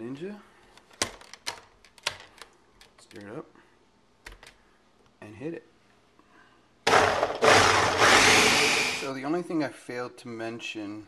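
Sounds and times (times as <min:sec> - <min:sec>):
blender motor running: 0:06.9 - 0:09.1.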